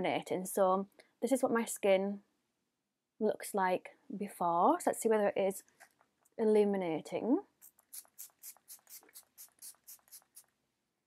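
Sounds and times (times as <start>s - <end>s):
spray pump spritzes: 7.6s - 10.5s.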